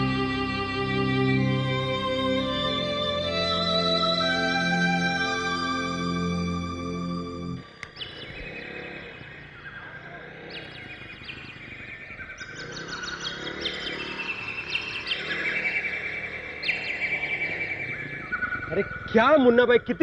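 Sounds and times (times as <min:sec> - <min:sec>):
birds chirping: 0:00.0 - 0:20.0.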